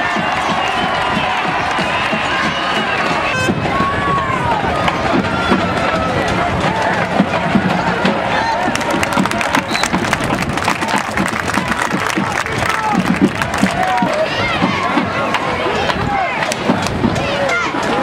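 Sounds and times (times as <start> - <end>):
stadium crowd cheering: 0.0 - 18.0.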